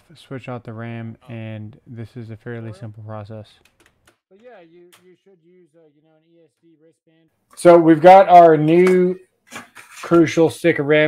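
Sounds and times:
person narrating: 0.0s - 3.6s, 4.3s - 9.2s.

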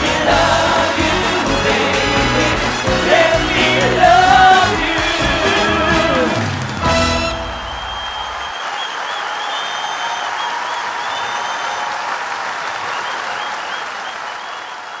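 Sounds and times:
audience applauding and cheering: 0.0s - 15.0s
high cries and whistles: 7.2s - 11.9s, 12.8s - 15.0s.

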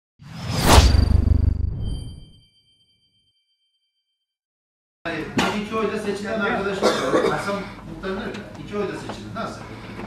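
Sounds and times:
whoosh: 0.2s - 2.5s
deep rumble: 0.3s - 2.3s.

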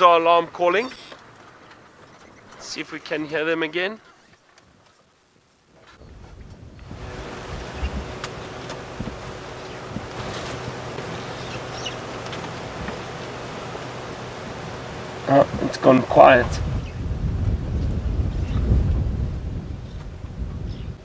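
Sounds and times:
wind rushing on microphone: 5.9s - 21.0s.

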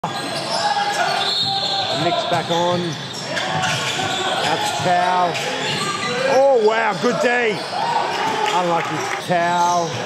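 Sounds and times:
voices in echoing hall: 0.0s - 10.0s.

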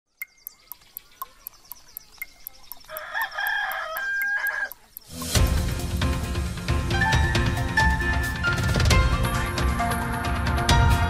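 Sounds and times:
clock ticking: 0.1s - 5.9s
rooster crowing: 2.9s - 4.8s
theme music: 5.1s - 11.0s.

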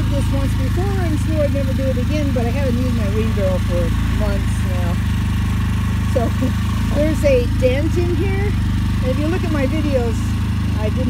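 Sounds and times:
generator engine running: 0.0s - 11.0s.

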